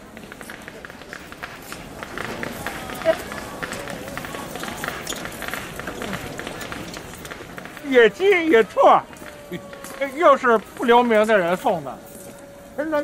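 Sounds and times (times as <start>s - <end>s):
faint background voices: 0.0s - 13.0s.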